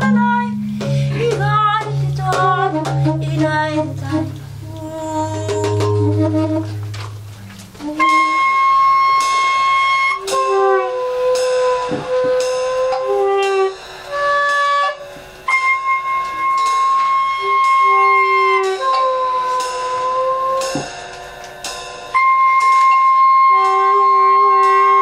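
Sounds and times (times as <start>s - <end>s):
improvised jazz woodwind notes: 0.0s - 20.8s, 22.1s - 25.0s.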